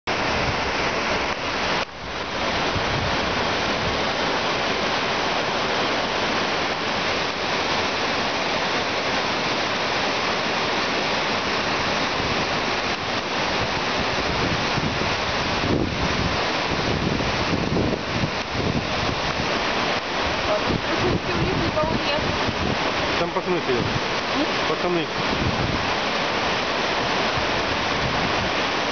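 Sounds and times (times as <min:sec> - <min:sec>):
river rapids rushing: 0:00.1 - 0:28.9.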